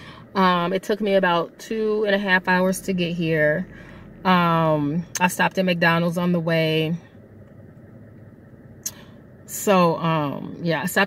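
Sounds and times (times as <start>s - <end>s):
car cabin hum: 0.0s - 11.0s
intake of breath: 3.7s - 4.2s.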